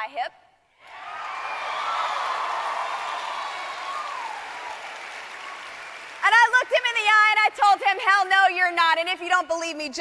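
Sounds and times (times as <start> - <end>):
people cheering: 0.8 - 6.5
audience applauding: 0.8 - 6.6.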